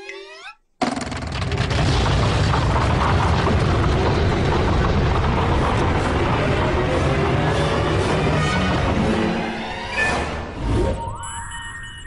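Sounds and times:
loud deep rumble: 1.3s - 9.5s.

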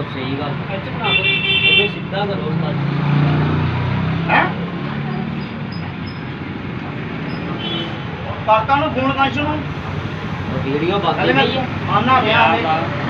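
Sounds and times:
vehicle horn: 1.0s - 2.0s, 7.6s - 8.0s
traffic engine hum passing: 1.8s - 13.0s.

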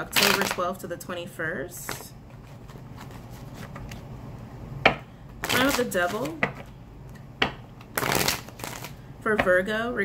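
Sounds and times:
cards snapping: 7.8s - 8.9s
cards riffling: 7.8s - 9.0s.

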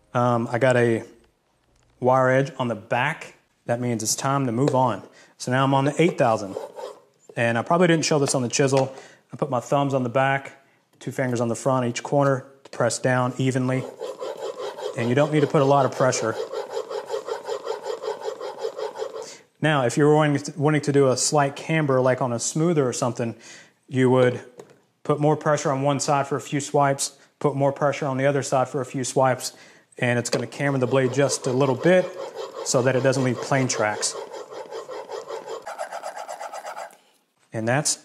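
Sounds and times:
plane iron scraping on waterstone: 5.9s - 7.0s, 13.6s - 19.3s, 30.2s - 37.0s.

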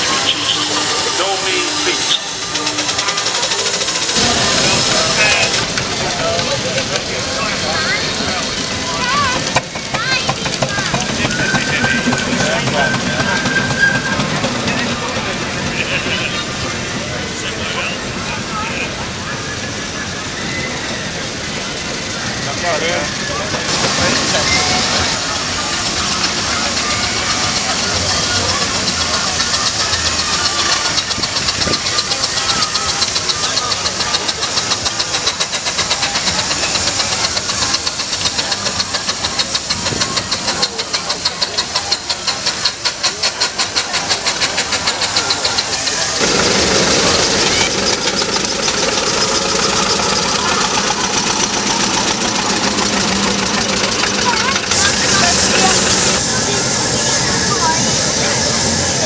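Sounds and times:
fast even exhaust beat: 0.0s - 5.9s, 7.4s - 16.6s, 23.6s - 59.0s
steam vehicles passing: 0.0s - 59.0s
voices in background: 0.0s - 59.0s.

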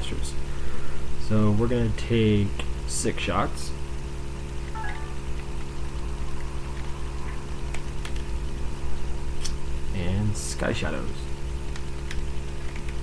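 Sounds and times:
low hum and hiss: 0.0s - 13.0s.

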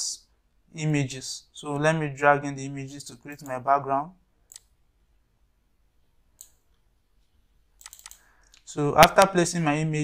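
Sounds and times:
computer mouse clicks: 3.3s - 3.6s, 4.4s - 4.8s, 6.4s - 6.9s, 7.8s - 8.7s.

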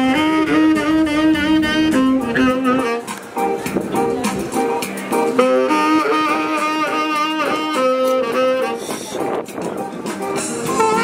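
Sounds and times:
saxophone jazzy melody: 0.0s - 11.0s.

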